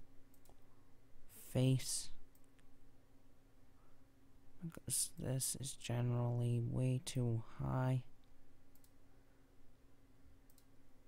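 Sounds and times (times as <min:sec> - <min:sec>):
low steady hum: 0:00.0 - 0:11.0
computer mouse click: 0:00.3 - 0:00.6, 0:08.7 - 0:09.0, 0:10.5 - 0:10.7.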